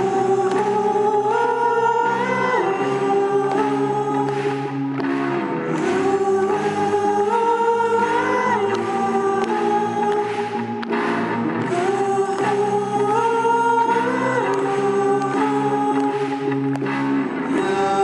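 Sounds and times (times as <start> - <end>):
choir-like singing: 0.0 - 10.8, 11.6 - 16.7
rock band playing live: 0.0 - 18.0.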